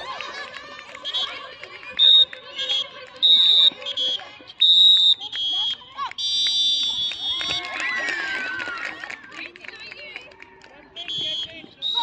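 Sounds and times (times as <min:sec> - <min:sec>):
shrill sports whistle blasts: 0:02.0 - 0:07.7, 0:11.0 - 0:12.0.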